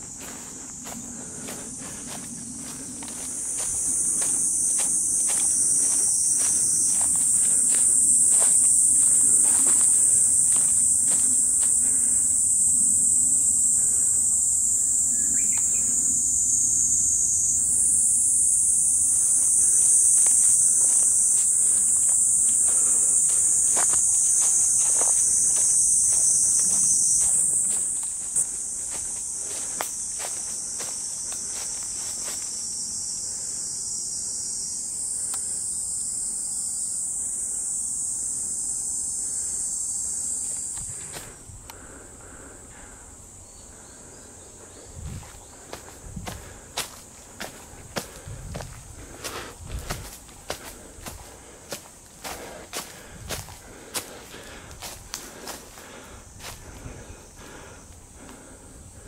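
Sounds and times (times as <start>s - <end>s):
footsteps on dry leaves: 0.0s - 12.5s, 19.1s - 32.6s, 45.2s - 57.0s
insect chorus drone: 0.0s - 59.0s.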